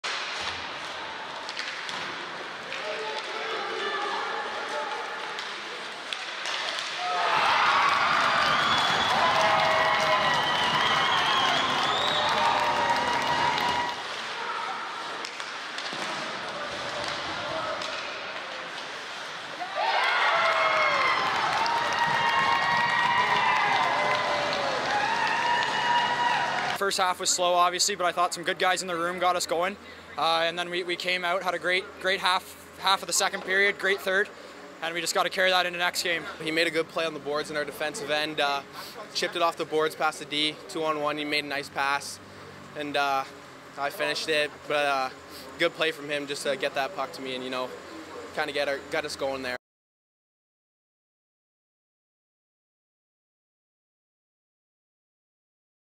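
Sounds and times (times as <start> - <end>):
puck and stick knocks: 1.4 - 3.4, 15.2 - 18.9
crowd cheering and shouting: 6.8 - 15.2, 19.6 - 26.8
murmur of spectators: 46.6 - 49.2.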